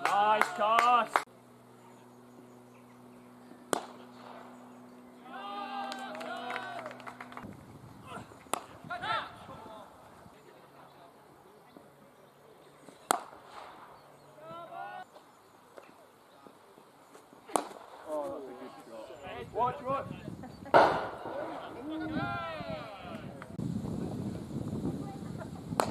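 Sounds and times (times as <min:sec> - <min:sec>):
players shouting: 0:00.0 - 0:01.2, 0:03.7 - 0:07.4, 0:08.0 - 0:10.0, 0:14.2 - 0:15.2, 0:21.1 - 0:23.4
cricket bat striking ball: 0:08.5 - 0:08.8, 0:13.1 - 0:13.7, 0:17.5 - 0:17.8, 0:20.8 - 0:21.6.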